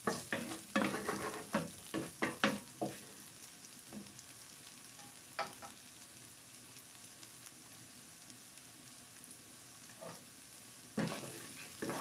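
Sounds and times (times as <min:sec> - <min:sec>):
wooden spatula knocking on pan: 0:00.0 - 0:03.0, 0:05.4 - 0:05.8
potatoes sizzling in a pan: 0:00.0 - 0:12.0.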